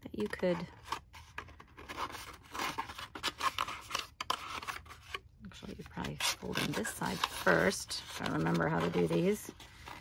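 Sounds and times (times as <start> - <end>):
stiff card rustling and scraping: 0.1 - 10.0.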